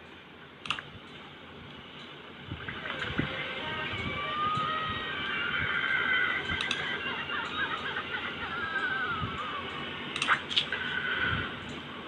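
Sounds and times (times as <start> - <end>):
cartoon character crying wail: 3.9 - 9.8.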